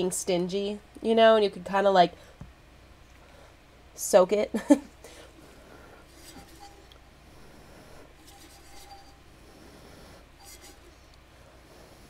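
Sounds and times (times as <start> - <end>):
low steady hum: 0.0 - 12.0
glass rubbing over paper: 6.1 - 11.0.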